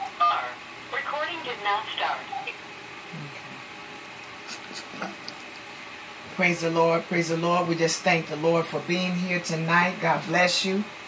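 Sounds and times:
faint low voice: 3.1s - 3.6s.

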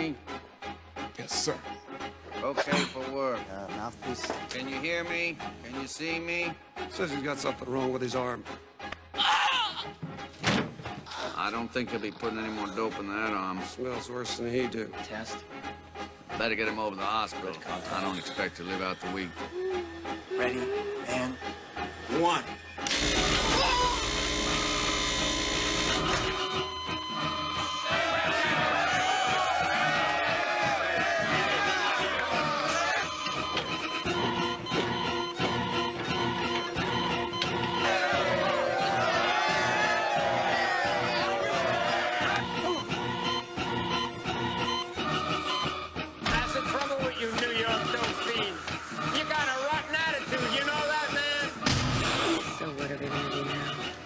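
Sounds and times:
film score music: 0.0s - 54.0s
harsh electrical buzz: 22.8s - 26.6s
man crying out: 23.4s - 24.1s
crowd whooping and shouting: 27.8s - 33.0s, 37.8s - 42.4s.

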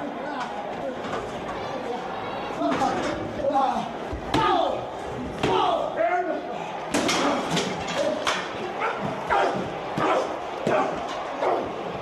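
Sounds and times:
men shouting and yelling: 3.4s - 12.0s.

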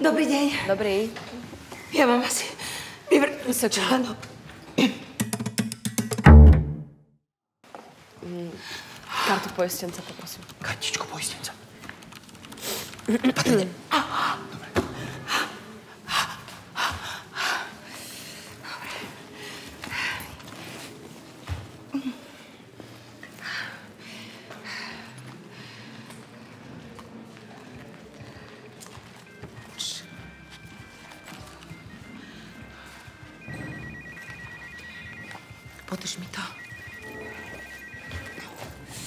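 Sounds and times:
telephone ringing with electronic trill: 33.4s - 39.0s.

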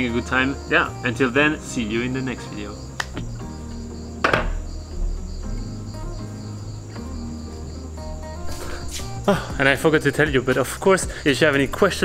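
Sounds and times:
crickets chirping: 0.0s - 12.0s
soft background music: 0.0s - 12.0s
wooden chair knock: 4.2s - 4.7s.

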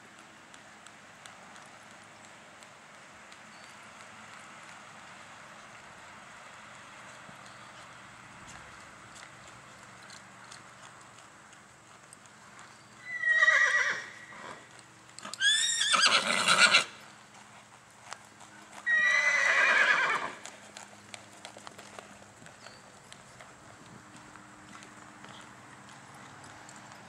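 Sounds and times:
horse whinnying: 13.0s - 14.6s, 15.2s - 17.0s, 18.9s - 20.4s
hoofbeats on sand: 17.3s - 27.0s.

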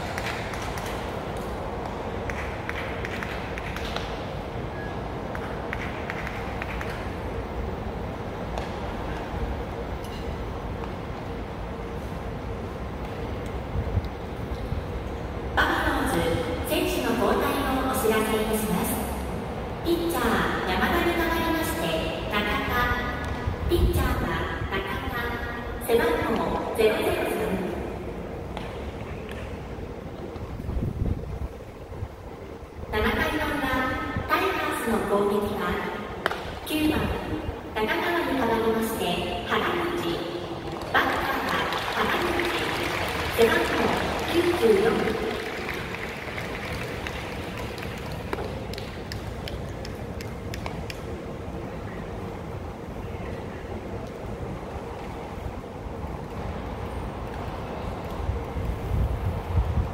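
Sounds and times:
sharp taps and claps: 0.0s - 4.2s, 5.3s - 7.1s, 45.0s - 51.1s
ballpark ambience: 0.0s - 59.9s
stadium announcement echo: 15.4s - 29.6s, 32.8s - 49.6s
wind rumble on microphone: 30.0s - 34.4s, 53.9s - 59.9s
crowd noise: 35.5s - 58.7s.

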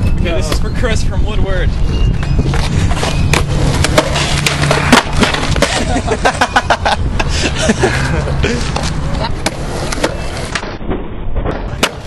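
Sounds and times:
skateboard wheels rolling on asphalt: 1.7s - 12.0s
skateboard clacks and knocks: 2.6s - 6.0s.

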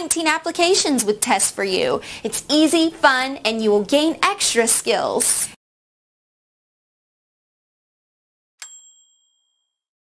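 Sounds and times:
bright bell ding: 8.6s - 9.9s.

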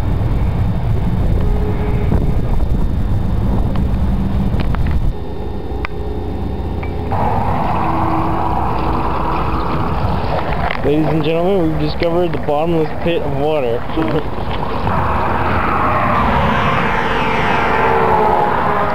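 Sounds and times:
outdoor background noise: 0.0s - 18.9s
trucks driving past: 0.0s - 18.9s.

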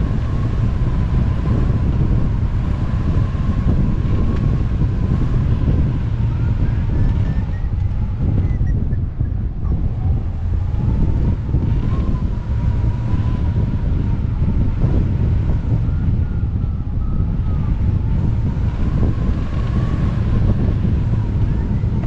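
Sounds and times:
wind rushing over microphone: 0.0s - 22.0s.

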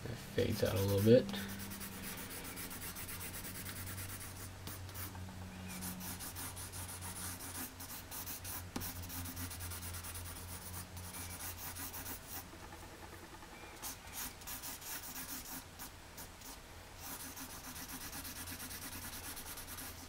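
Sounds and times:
low steady hum: 0.0s - 20.0s
pencil shading on paper: 0.6s - 5.1s, 5.8s - 12.4s, 13.8s - 20.0s.

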